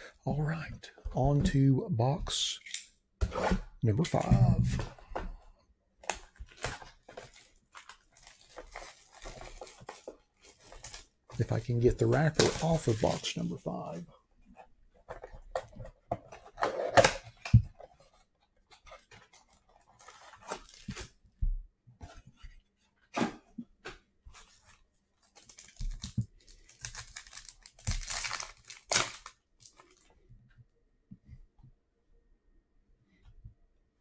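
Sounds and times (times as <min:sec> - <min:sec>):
plastic wrapper tearing: 0:06.1 - 0:11.0, 0:25.4 - 0:30.0
card packs crinkling: 0:06.1 - 0:14.0, 0:24.4 - 0:30.0.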